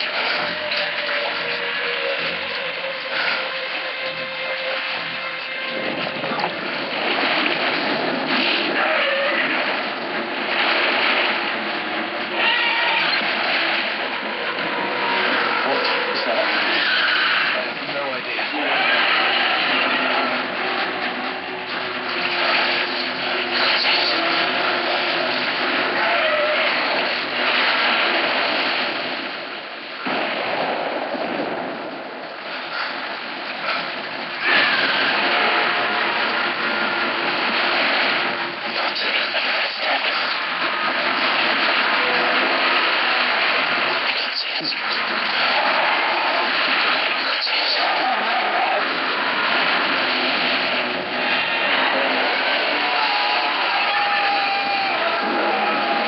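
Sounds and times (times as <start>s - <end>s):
water rushing and crashing: 0.0s - 56.0s
voices shouting: 51.2s - 56.0s.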